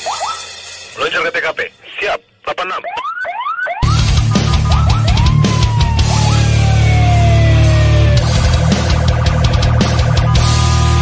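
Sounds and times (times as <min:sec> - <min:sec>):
electronic siren-like whoop: 0:02.9 - 0:11.0
music with heavy bass beat: 0:03.8 - 0:11.0.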